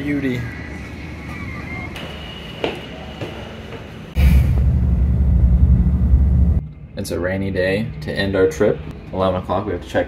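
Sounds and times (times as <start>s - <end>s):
loud low rumble: 4.2s - 7.2s.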